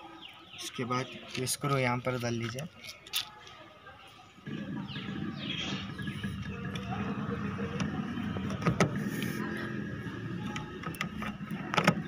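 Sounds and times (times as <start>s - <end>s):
screwdriver clicking and scraping: 2.4s - 3.4s.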